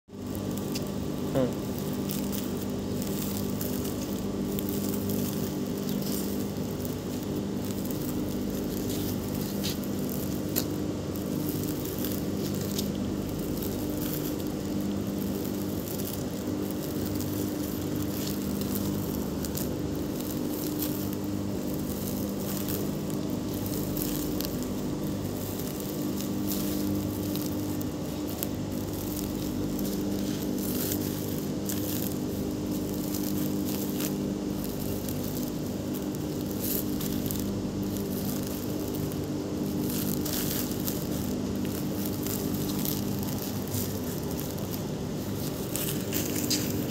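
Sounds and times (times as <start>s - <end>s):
steady machine hum: 0.1s - 46.9s
plastic sacks rustling: 2.0s - 46.9s.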